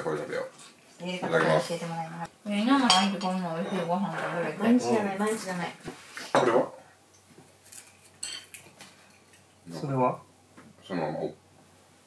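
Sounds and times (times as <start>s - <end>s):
dishes and chopsticks clinking: 2.8s - 4.0s, 7.7s - 9.4s.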